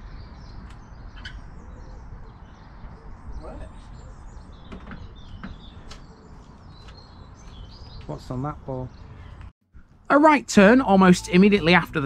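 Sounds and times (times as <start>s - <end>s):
bird chirp: 0.0s - 12.0s.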